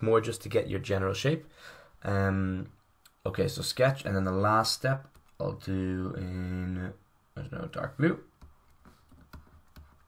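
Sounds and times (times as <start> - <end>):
person speaking: 0.0 - 8.5.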